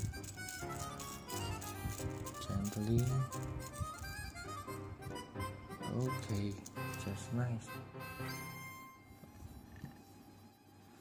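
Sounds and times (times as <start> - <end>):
melody of held notes: 0.0 - 9.4.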